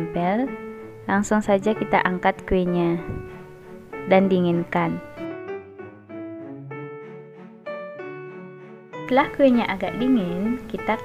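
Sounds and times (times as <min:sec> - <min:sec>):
slow piano notes: 0:00.0 - 0:11.0.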